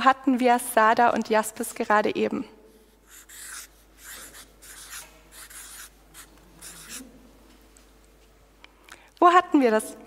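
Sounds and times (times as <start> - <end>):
marker pen writing on paper: 3.0 - 7.1.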